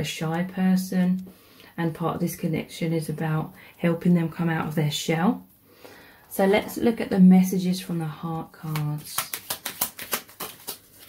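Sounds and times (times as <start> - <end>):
cards being shuffled: 8.6 - 11.0.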